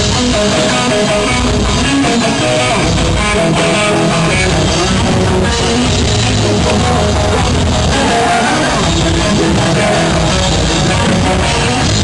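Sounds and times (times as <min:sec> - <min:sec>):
electric guitar riff: 0:00.0 - 0:12.0
live rock band playing: 0:00.0 - 0:12.0.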